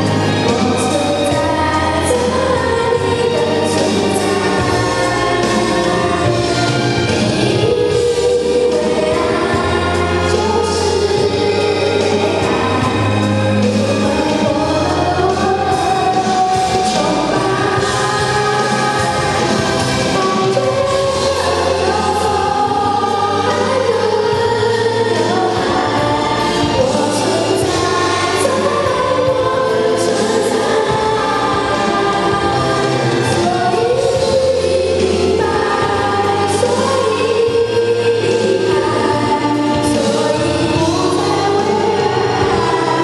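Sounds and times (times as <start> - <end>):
girl singing into a microphone: 0.0 - 6.6, 7.4 - 43.0
karaoke backing track: 0.0 - 43.0.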